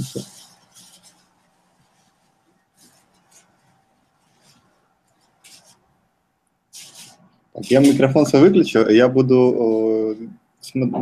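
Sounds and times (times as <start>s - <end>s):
soft short rustles: 0.0s - 5.8s, 6.7s - 8.2s.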